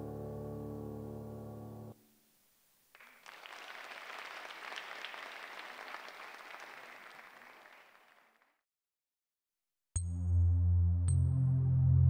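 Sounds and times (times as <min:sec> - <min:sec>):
music: 0:00.0 - 0:02.0, 0:10.0 - 0:12.0
audience applauding: 0:02.9 - 0:08.5.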